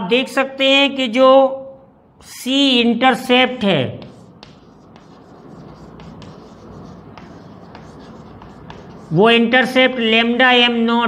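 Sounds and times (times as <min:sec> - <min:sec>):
chalk scratching on blackboard: 0:04.0 - 0:10.0
chalk tapping on board: 0:04.0 - 0:10.1.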